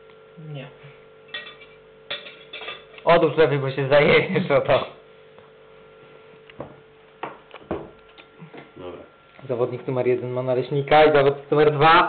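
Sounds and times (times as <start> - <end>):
knife clinking against fork: 1.3 - 3.0.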